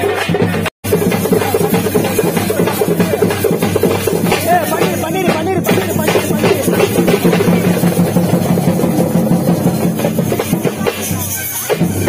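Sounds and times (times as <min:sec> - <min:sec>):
fast loud drumming: 0:00.0 - 0:12.0.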